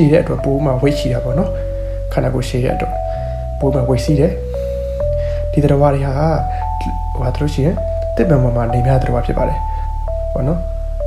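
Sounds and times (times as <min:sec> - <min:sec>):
person speaking: 0:00.0 - 0:10.8
background music over low drone: 0:00.0 - 0:11.0.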